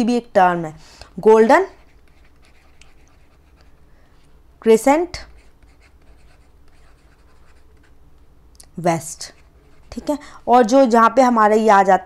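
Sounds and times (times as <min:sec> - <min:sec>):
stylus writing on a tablet: 0:01.2 - 0:03.7, 0:05.1 - 0:08.0, 0:09.2 - 0:10.8
person speaking: 0:04.6 - 0:07.9, 0:08.6 - 0:12.0.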